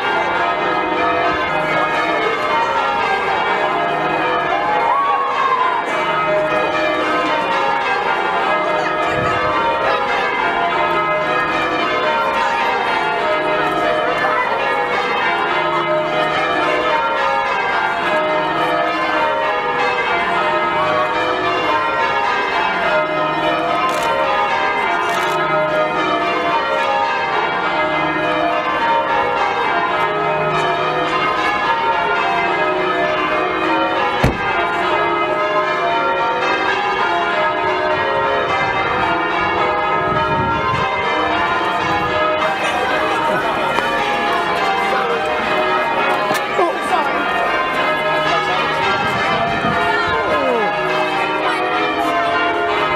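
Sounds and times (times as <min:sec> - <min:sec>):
church bells pealing: 0:00.0 - 0:52.9
short thump: 0:34.2 - 0:34.5.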